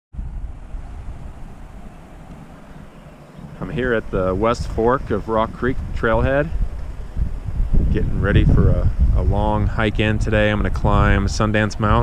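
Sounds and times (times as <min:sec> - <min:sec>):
wind buffeting microphone: 0:00.1 - 0:12.0.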